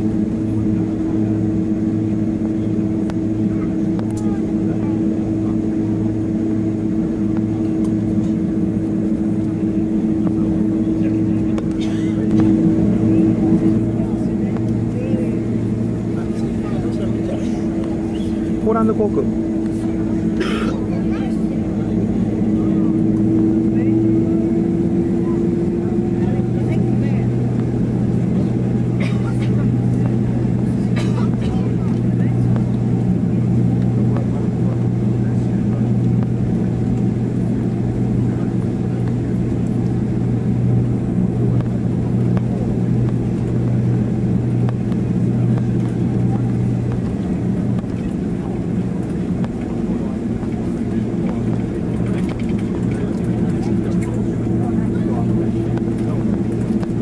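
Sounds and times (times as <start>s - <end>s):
higher engine tone: 0.0s - 57.0s
low aircraft engine hum: 0.0s - 57.0s.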